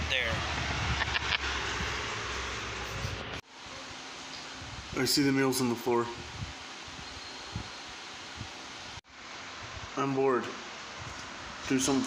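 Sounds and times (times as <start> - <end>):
room noise hiss: 3.5 - 12.0.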